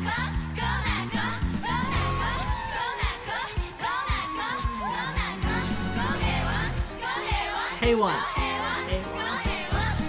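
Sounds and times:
bass: 0.0 - 10.0
female voices singing: 0.0 - 10.0
drum beats: 0.4 - 10.0.

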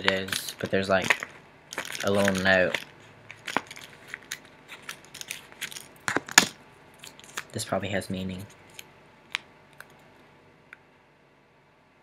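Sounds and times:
paper note crinkling: 0.0 - 7.6.

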